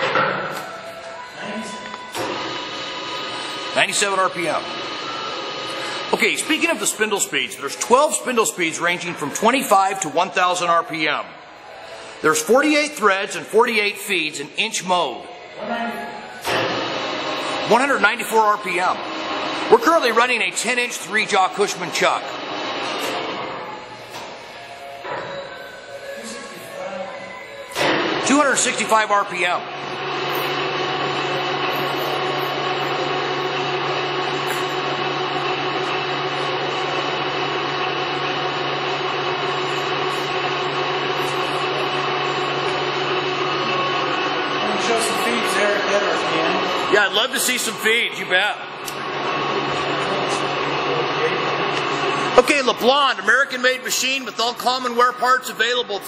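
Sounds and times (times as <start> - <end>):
lathe gear hum: 2.0 - 10.2, 16.5 - 24.4, 29.6 - 54.6.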